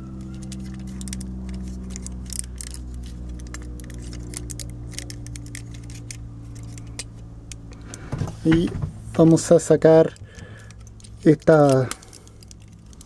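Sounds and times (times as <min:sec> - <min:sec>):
steady low hum: 0:00.0 - 0:13.0
plastic toy parts clicking: 0:00.2 - 0:07.1, 0:10.0 - 0:13.0.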